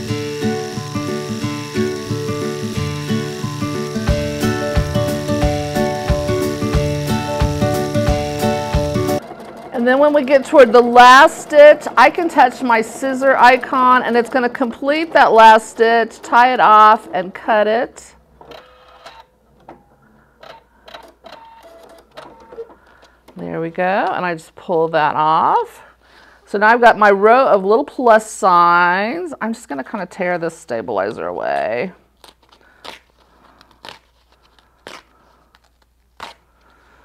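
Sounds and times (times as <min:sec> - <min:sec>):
sewing machine motor whines: 0:00.0 - 0:17.7
stabilizer tearing off fabric: 0:32.2 - 0:36.5.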